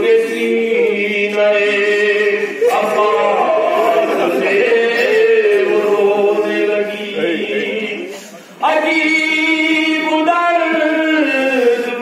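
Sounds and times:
man chanting a lament into microphone: 0.0s - 12.0s.

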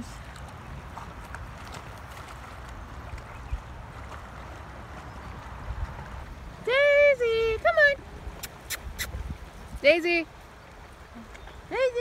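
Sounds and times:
wind rumble on microphone: 0.0s - 10.5s
river flowing: 0.0s - 12.0s.

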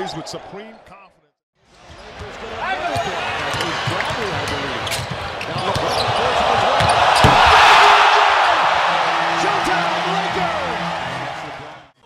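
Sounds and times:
crowd noise: 1.7s - 12.0s.

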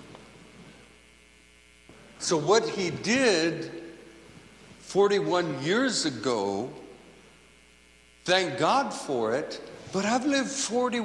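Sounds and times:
faint mains hum: 0.0s - 11.0s
voice echo: 1.9s - 7.3s, 8.2s - 11.0s.

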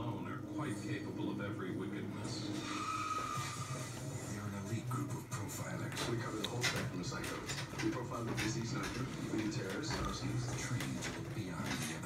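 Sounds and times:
voices from television: 0.0s - 12.0s.

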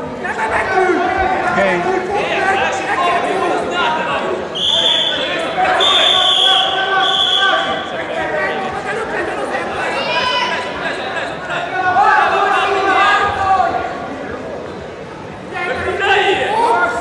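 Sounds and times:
crowd chatter in a hall: 0.0s - 17.0s
referee's whistle blasts: 4.6s - 7.8s.

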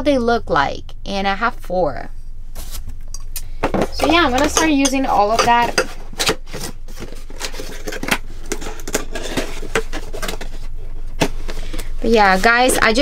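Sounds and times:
cardboard box handled and folded: 3.9s - 13.0s.

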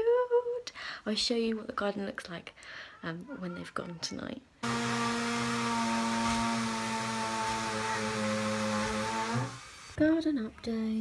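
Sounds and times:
motor humming: 4.6s - 10.0s.

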